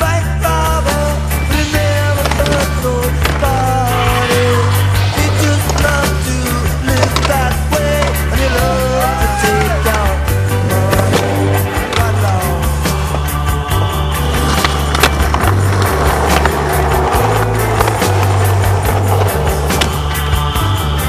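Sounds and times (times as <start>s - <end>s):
music with steady beat and bass: 0.0s - 21.0s.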